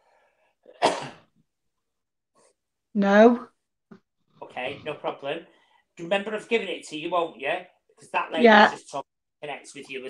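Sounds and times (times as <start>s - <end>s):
woman coughing or sneezing: 0.7s - 1.3s.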